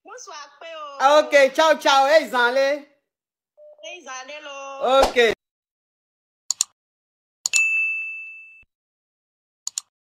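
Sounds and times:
bell-like ding: 7.6s - 8.7s.

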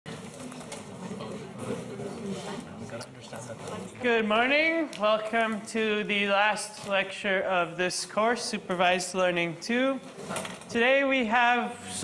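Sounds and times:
indistinct chatter: 0.1s - 4.2s.

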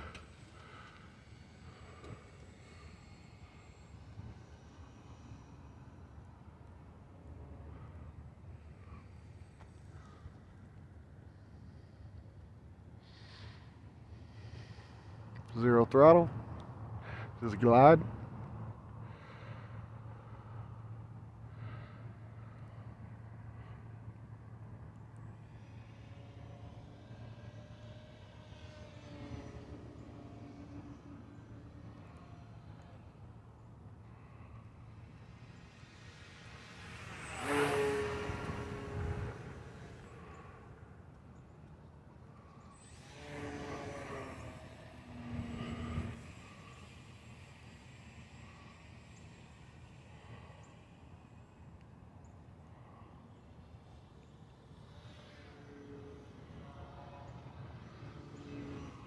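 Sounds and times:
model plane motor buzzing: 0.0s - 10.6s, 19.1s - 59.0s.

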